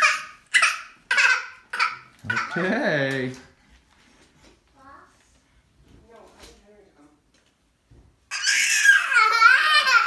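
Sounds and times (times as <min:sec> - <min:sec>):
toddler shrieking: 0:08.3 - 0:10.0.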